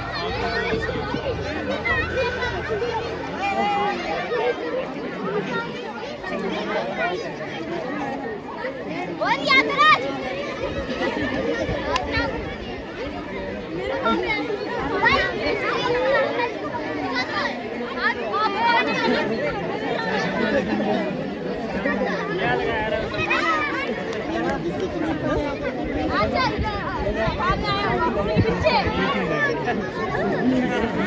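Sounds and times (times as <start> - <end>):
crowd chatter: 0.0 - 31.0.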